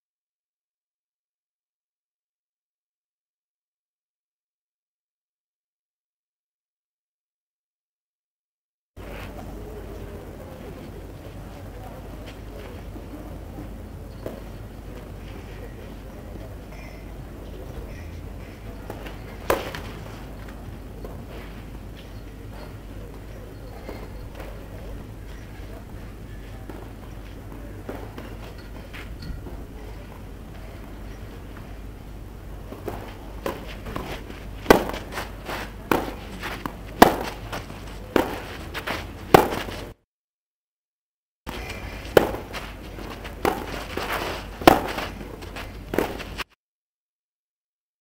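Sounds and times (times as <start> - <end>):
tennis ball bouncing on clay: 17.8 - 24.9, 26.5 - 31.7, 32.5 - 39.9, 41.5 - 46.4
racket striking tennis ball: 18.8 - 20.2, 27.8 - 29.7, 32.6 - 39.9, 41.5 - 46.4.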